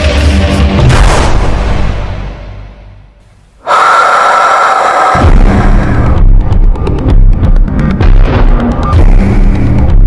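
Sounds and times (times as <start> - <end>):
loud breathy rush of air: 3.6 - 6.2.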